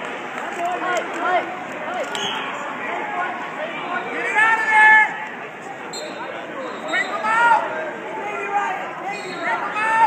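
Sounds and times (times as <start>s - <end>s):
people talking and calling out: 0.0s - 10.0s.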